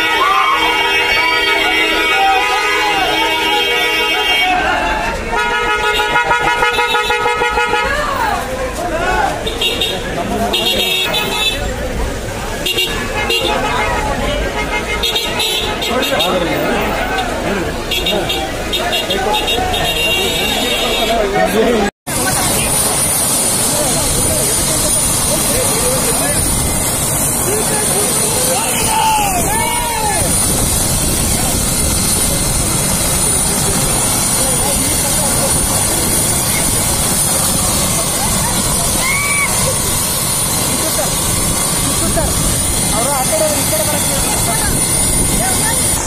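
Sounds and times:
raised voices: 0.0 - 5.9, 7.6 - 46.0
helicopter rotor turning: 22.1 - 46.0
turbine whine: 22.2 - 46.0.

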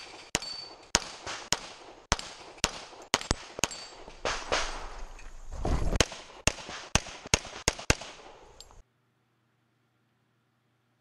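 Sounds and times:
pistol shots: 0.0 - 5.0, 5.9 - 8.4.

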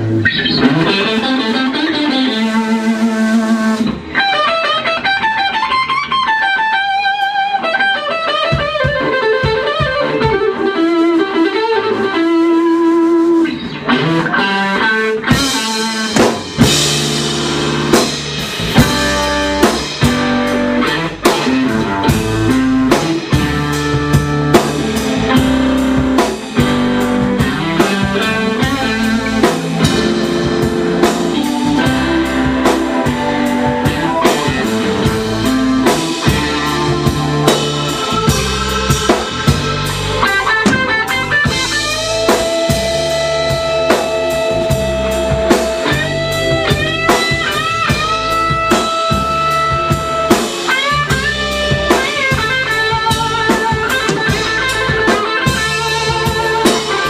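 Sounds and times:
bass: 0.0 - 57.0
blues-rock band playing: 0.0 - 57.0
drums: 0.0 - 57.0
electric guitar bent notes: 0.0 - 57.0.

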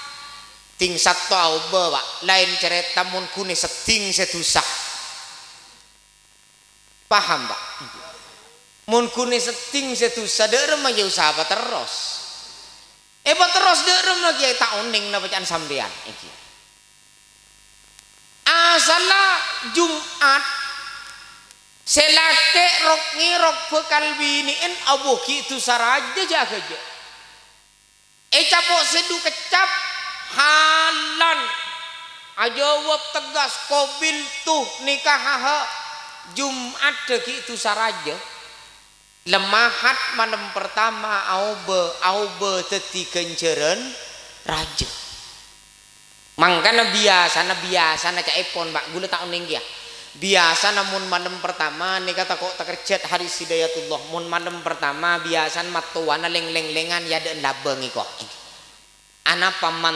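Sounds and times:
sound system hum and hiss: 0.0 - 59.9
man speaking through microphone: 0.8 - 5.1, 7.1 - 12.4, 13.3 - 16.4, 18.5 - 20.7, 21.9 - 27.0, 28.4 - 38.3, 39.3 - 45.2, 46.4 - 58.4, 59.3 - 59.9
man's amplified speech: 0.8 - 5.1, 7.1 - 12.4, 13.3 - 16.4, 18.5 - 20.7, 21.9 - 27.0, 28.3 - 38.4, 39.3 - 45.2, 46.4 - 58.4, 59.3 - 59.9.

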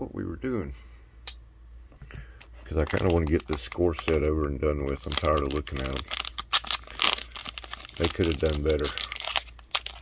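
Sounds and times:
wrapper crinkling: 2.6 - 10.0.

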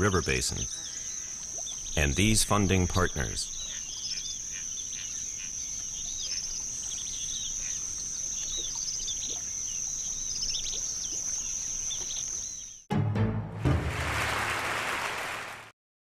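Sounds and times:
birds chirping: 0.0 - 12.9.

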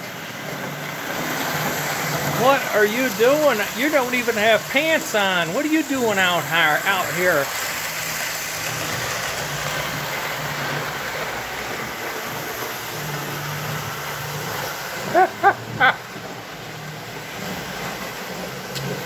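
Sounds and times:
low motor hum: 0.0 - 19.0
model train rumbling on track: 0.0 - 19.0.

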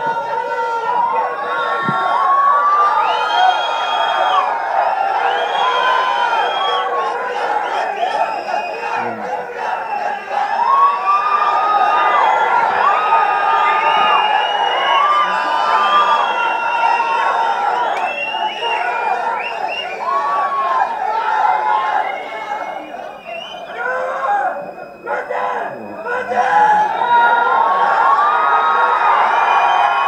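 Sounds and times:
large crowd cheering and shouting: 0.0 - 30.0.

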